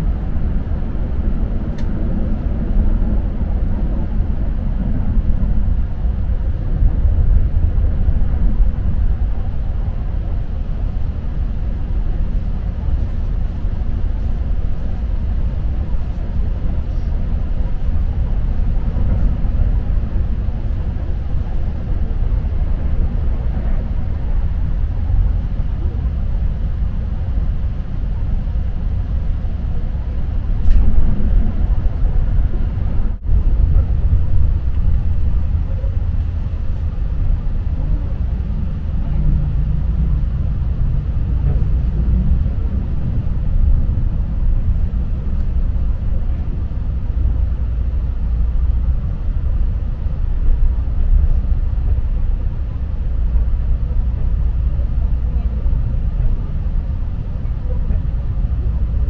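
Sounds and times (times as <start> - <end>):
passing train: 0.0 - 59.0
train wheels rumbling on rail: 0.0 - 59.0.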